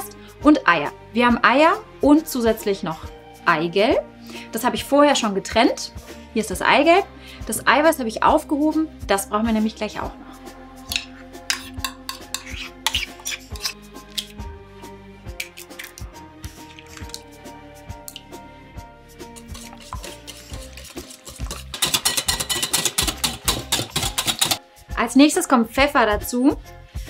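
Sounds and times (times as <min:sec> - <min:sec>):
background music: 0:00.0 - 0:27.0
metal spoon scraping a bowl: 0:10.9 - 0:14.4, 0:16.6 - 0:17.2, 0:19.2 - 0:24.6
wire whisk beating in glass bowl: 0:19.4 - 0:24.6.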